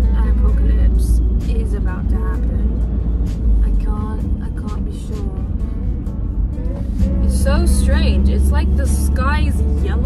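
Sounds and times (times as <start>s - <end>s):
background music: 0.0s - 10.0s
engine and road rumble: 0.0s - 10.0s.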